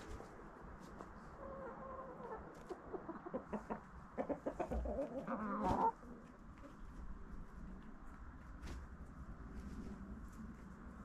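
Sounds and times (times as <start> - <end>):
chickens clucking: 0.0 - 8.8.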